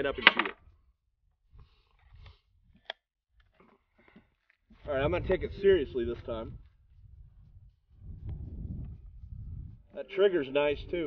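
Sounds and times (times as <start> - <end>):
wind buffeting microphone: 4.8 - 10.0, 10.6 - 11.0.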